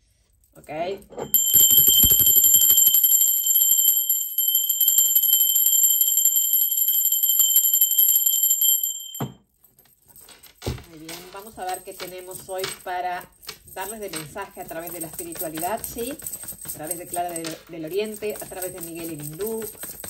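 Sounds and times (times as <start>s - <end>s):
handbell ringing rapidly: 1.3s - 9.2s.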